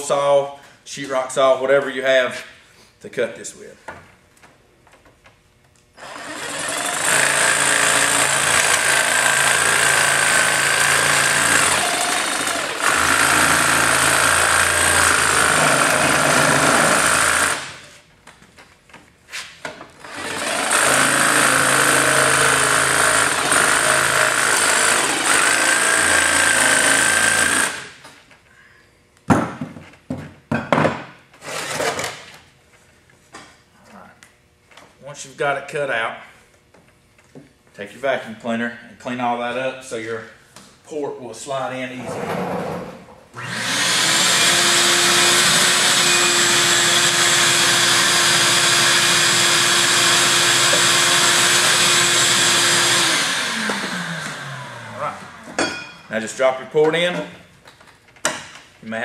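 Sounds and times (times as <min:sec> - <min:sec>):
jigsaw cutting sheet metal: 0:06.0 - 0:17.9, 0:20.0 - 0:28.0, 0:31.4 - 0:32.2, 0:43.4 - 0:55.6.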